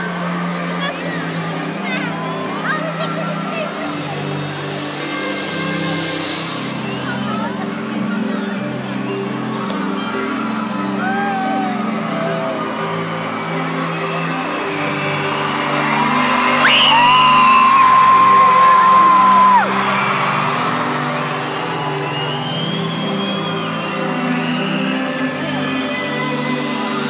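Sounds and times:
arena concert music: 0.0s - 27.0s
crowd cries: 9.4s - 27.0s.

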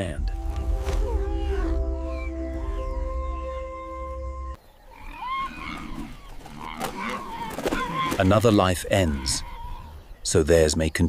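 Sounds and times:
background music: 0.0s - 4.6s
hyena calls: 4.9s - 10.1s.

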